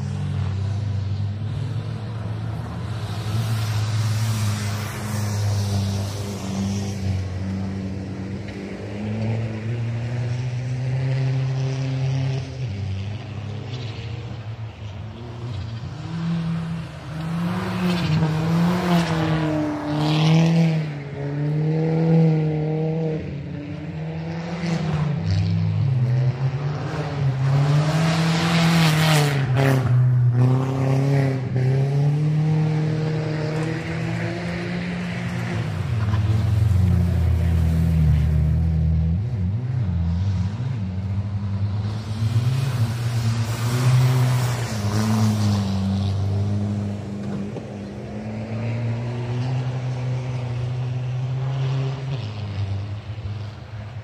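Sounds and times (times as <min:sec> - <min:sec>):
racing car engine revving: 0:15.7 - 0:53.1.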